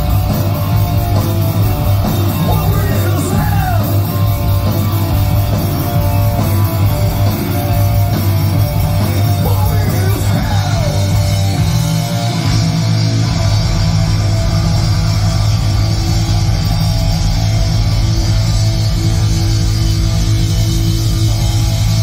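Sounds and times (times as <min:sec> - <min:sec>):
heavy metal band playing: 0:00.0 - 0:22.0.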